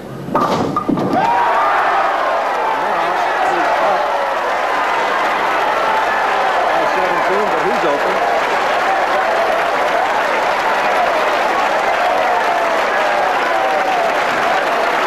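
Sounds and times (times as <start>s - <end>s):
bowling ball crashing into pins: 0.3s - 1.4s
crowd cheering and shouting: 1.0s - 15.0s.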